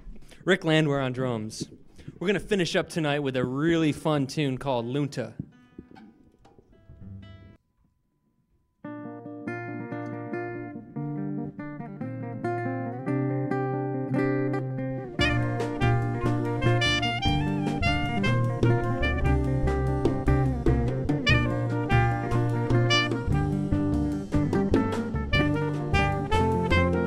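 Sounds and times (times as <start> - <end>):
plucked guitar notes: 5.4 - 7.6, 8.9 - 27.0
jazz band with saxophone: 15.0 - 27.0.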